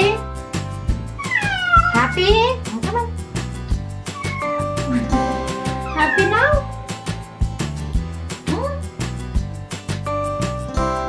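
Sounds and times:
background music with beat: 0.0 - 11.0
cat meowing: 1.2 - 2.4, 4.1 - 6.7.

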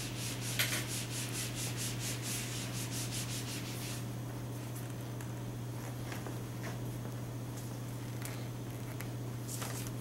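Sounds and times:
eraser rubbing on whiteboard: 0.0 - 4.0.

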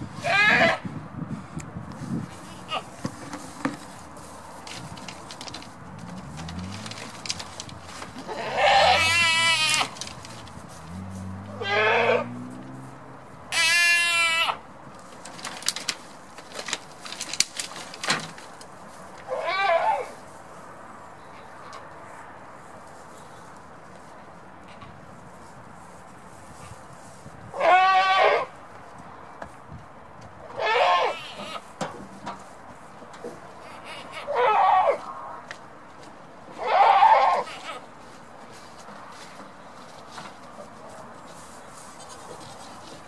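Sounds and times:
goat bleating: 0.2 - 0.8, 8.2 - 10.0, 11.5 - 12.3, 13.5 - 14.6, 27.6 - 28.5, 30.6 - 31.6, 36.6 - 37.8.

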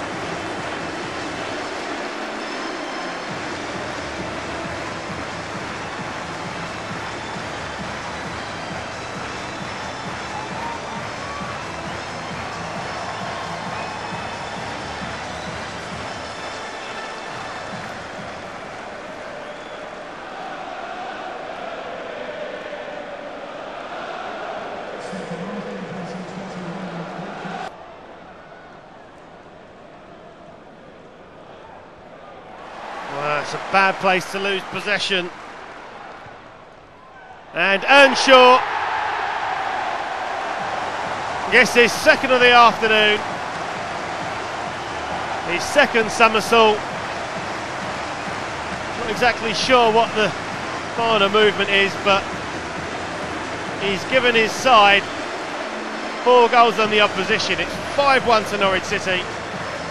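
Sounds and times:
stadium crowd cheering: 0.0 - 59.9.

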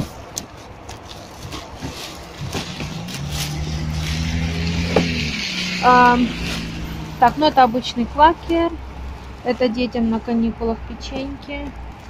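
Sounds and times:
grocery packaging rustling: 0.0 - 4.8, 6.0 - 12.0
car engine humming: 2.3 - 12.0.

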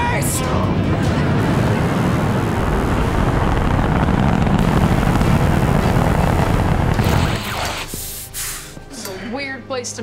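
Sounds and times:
rocket thrusters rumbling: 0.2 - 8.1.

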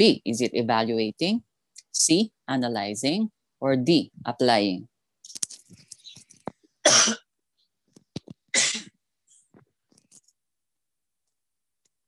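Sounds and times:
man coughing: 6.9 - 7.2.

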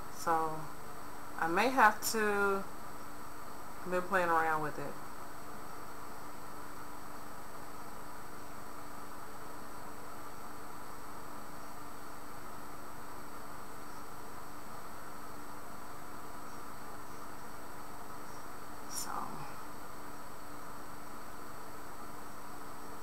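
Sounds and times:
background hiss: 0.0 - 23.0
low hum: 0.0 - 23.0.

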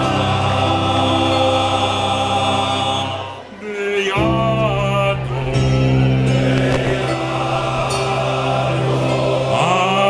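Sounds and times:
male soloist singing: 0.0 - 10.0
men's choir singing: 0.0 - 10.0.

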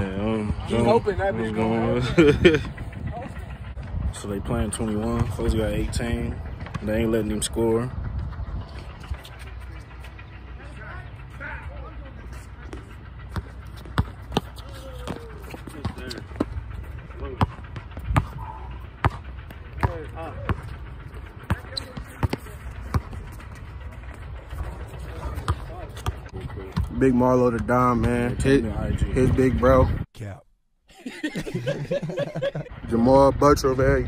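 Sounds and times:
distant voices: 0.0 - 30.0, 31.0 - 34.0
basketball bouncing on hard court: 13.4 - 16.5, 21.5 - 23.2.

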